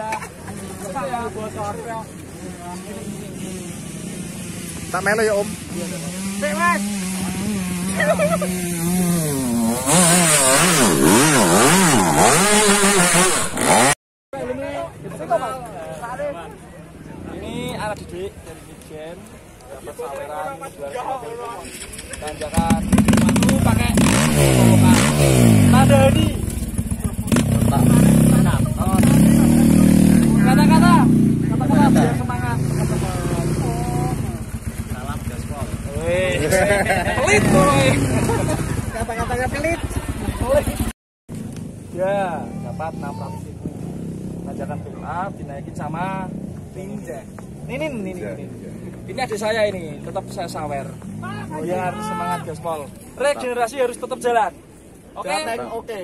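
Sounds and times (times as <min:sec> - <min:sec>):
dirt bike engine revving: 0:02.7 - 0:14.0, 0:22.4 - 0:40.9
dirt bike engine idling: 0:25.6 - 0:29.6, 0:30.4 - 0:40.9.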